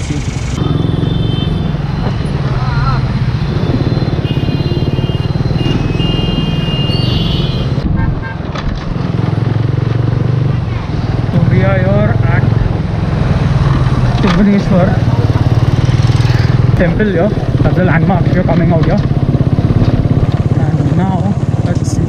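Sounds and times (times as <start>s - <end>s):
motorcycle engine running: 0.0s - 7.8s, 8.8s - 22.0s
vehicle horns honking: 0.6s - 8.4s.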